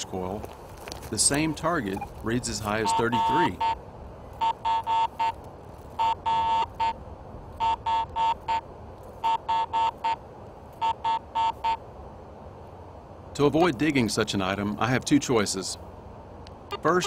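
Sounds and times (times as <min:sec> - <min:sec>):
metal detector short beeps: 0:02.8 - 0:03.8, 0:04.4 - 0:05.4, 0:06.0 - 0:07.0.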